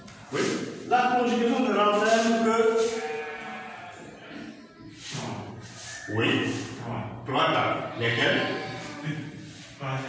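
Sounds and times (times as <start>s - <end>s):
faint classroom room noise: 0.0s - 10.0s.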